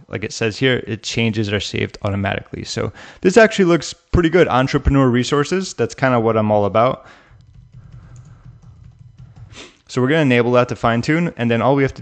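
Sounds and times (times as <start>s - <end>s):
keyboard typing: 7.3s - 9.8s.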